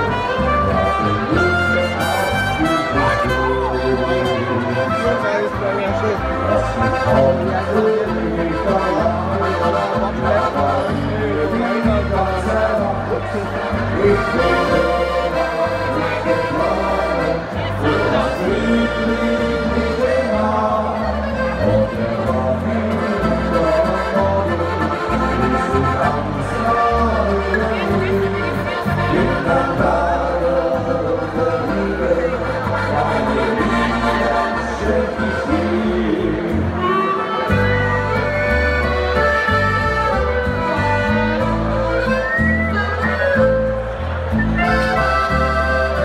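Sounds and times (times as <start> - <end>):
accordion melody: 0.0 - 46.0
bass guitar: 0.0 - 46.0
guitar: 0.0 - 46.0.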